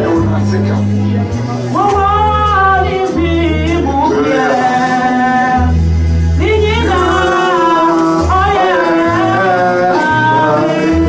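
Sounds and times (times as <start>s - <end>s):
keyboard and band bass notes: 0.0s - 11.0s
person singing into microphone: 0.0s - 11.0s.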